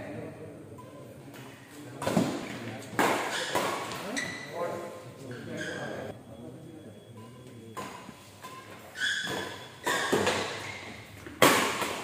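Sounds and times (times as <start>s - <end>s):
voices in a hall: 0.0s - 8.4s
racket striking shuttlecock: 11.3s - 12.0s.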